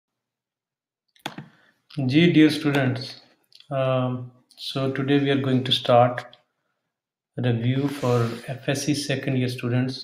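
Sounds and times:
man speaking: 1.9s - 6.4s, 7.4s - 10.0s.

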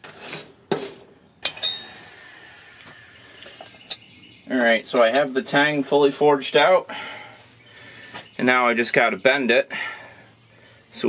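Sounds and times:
metal tools clanking on anvil: 1.4s - 2.0s, 3.6s - 5.3s.

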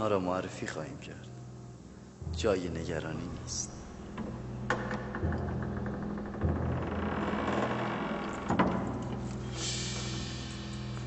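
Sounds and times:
low sustained drone: 1.9s - 11.0s.

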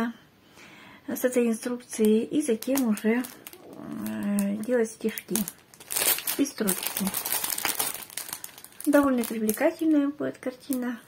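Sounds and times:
plastic packaging crinkling: 1.8s - 11.0s.

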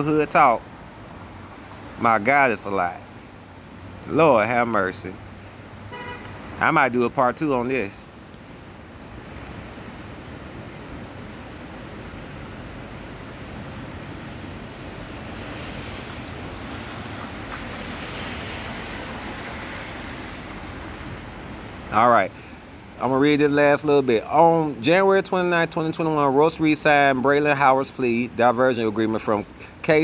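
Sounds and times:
steady rushing noise: 0.0s - 24.7s.

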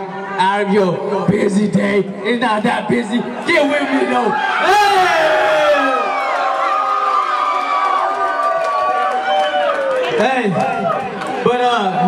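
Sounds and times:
crowd cheering with whoops: 4.4s - 11.4s.

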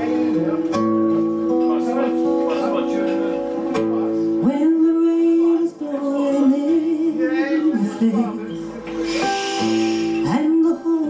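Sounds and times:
acoustic guitar playing: 0.0s - 11.0s
woman singing: 4.4s - 8.5s, 10.2s - 11.0s.

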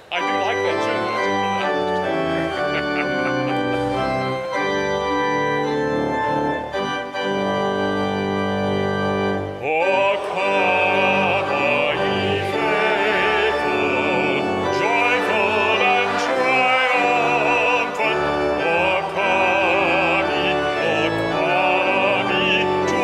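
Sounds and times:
church organ playing hymn chords: 0.0s - 23.0s
wavering singing voice: 9.6s - 23.0s.

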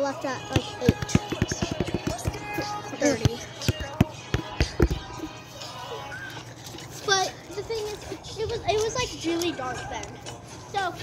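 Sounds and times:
background music: 0.0s - 11.0s
hands slapping volleyball: 0.5s - 2.5s, 3.1s - 5.0s
children's voices: 6.0s - 11.0s.

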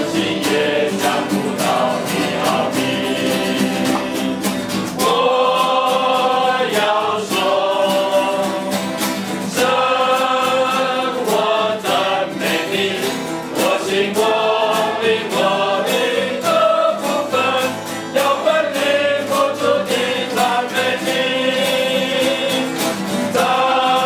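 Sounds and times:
group singing: 0.0s - 24.0s
strummed acoustic guitars: 0.0s - 24.0s.

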